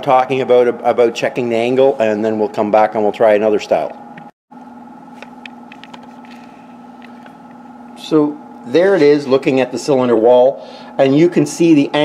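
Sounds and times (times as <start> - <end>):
low workshop hum: 0.0 - 12.0.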